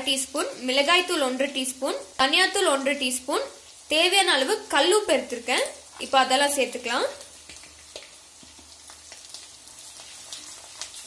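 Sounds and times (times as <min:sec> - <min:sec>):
oil sizzling with crackles: 0:00.0 - 0:11.0.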